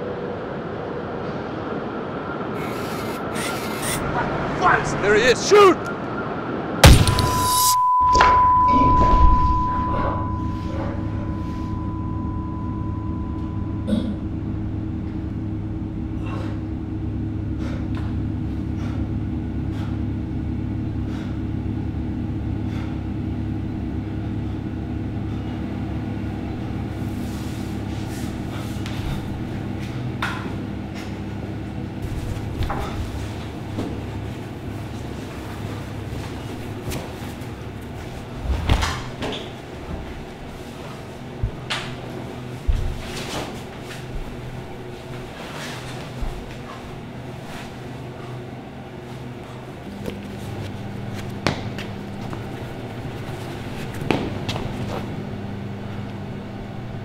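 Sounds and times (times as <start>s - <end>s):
steady low hum: 0.0s - 57.0s
high ringing tone: 5.8s - 16.3s.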